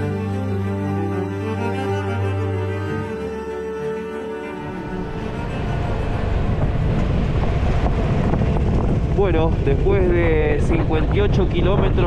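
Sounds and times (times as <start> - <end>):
wind buffeting microphone: 4.6 - 12.0.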